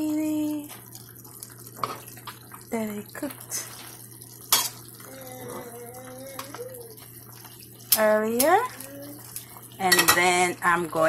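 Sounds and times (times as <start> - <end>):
faint kitchen noise: 0.0 - 11.0
person humming: 5.1 - 6.9.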